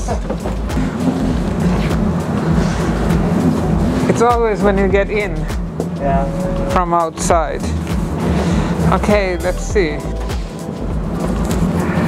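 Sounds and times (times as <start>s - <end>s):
tram rumble and hum: 0.0s - 12.0s.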